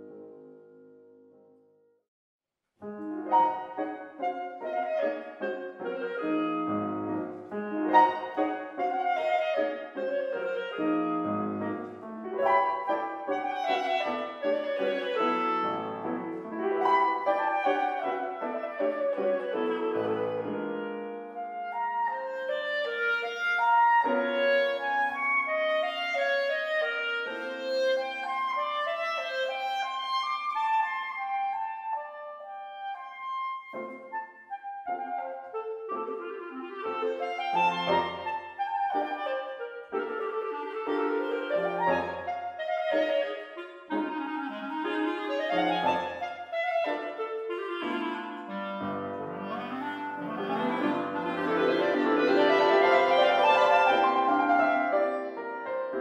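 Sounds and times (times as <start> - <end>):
clarinet: 0.0 - 1.8, 2.8 - 56.0
grand piano: 0.0 - 1.9, 2.8 - 56.0.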